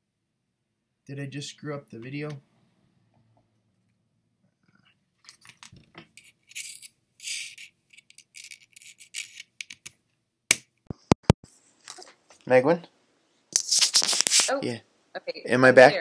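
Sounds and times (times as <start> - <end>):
headset cable rustling: 4.8 - 10.0, 13.6 - 14.6.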